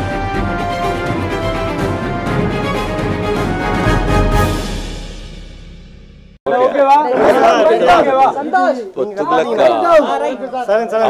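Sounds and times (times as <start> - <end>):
man talking: 6.5 - 11.0
voices chattering: 6.5 - 11.0.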